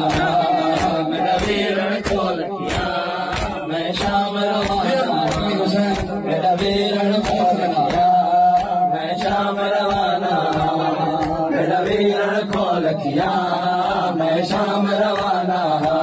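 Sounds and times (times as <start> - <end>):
chest-beating slaps: 0.0 - 12.8
men chanting through loudspeaker: 0.0 - 16.0.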